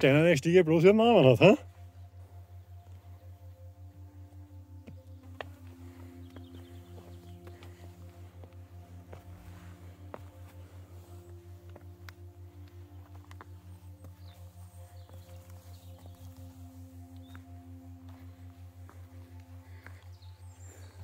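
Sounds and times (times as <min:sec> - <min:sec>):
soft music with pulsing beat: 0:00.0 - 0:21.0.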